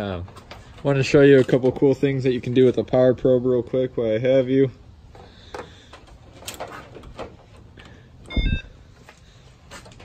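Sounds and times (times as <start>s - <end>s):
short electronic beeps: 8.3s - 8.8s.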